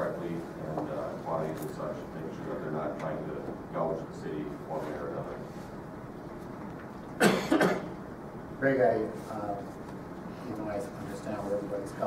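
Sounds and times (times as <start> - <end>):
man coughing: 7.2 - 8.0.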